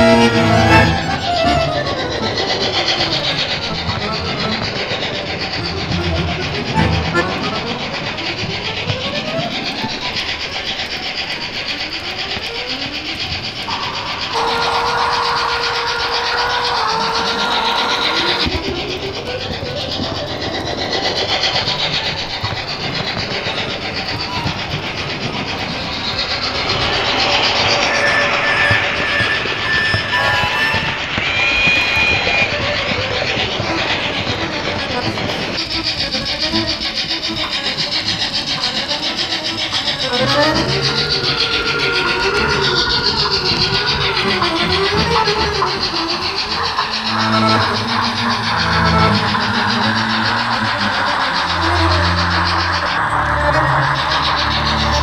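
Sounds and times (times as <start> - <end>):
train rumbling on rails: 0.0 - 55.0
train whines: 0.0 - 55.0.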